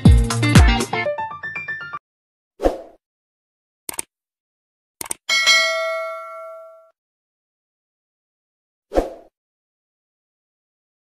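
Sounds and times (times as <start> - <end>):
quick clicks: 3.9 - 4.1, 5.0 - 5.3
bright bell ding: 5.3 - 6.9.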